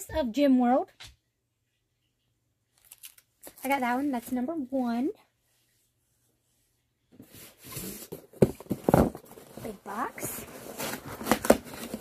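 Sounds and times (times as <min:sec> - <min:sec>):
cardboard box rustling: 0:07.2 - 0:12.0
box thumps: 0:08.0 - 0:09.6.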